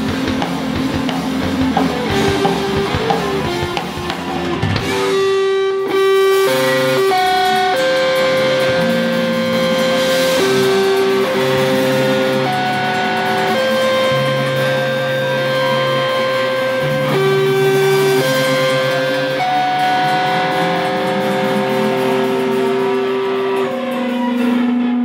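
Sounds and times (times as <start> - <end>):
electric guitar sustained chords: 0.0 - 25.0.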